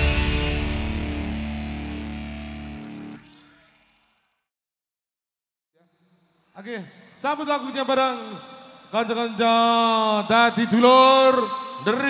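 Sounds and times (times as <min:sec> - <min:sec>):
electric guitar and keyboard chord: 0:00.0 - 0:03.4.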